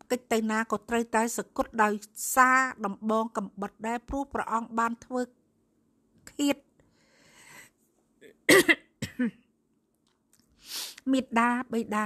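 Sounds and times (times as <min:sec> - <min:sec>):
woman coughing: 0:08.5 - 0:09.4.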